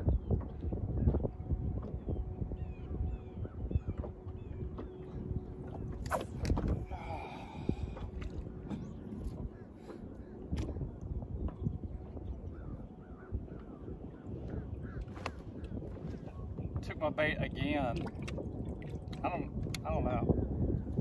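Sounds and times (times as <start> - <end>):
wind on microphone: 0.0 - 21.0
faint bird calling: 12.4 - 16.5.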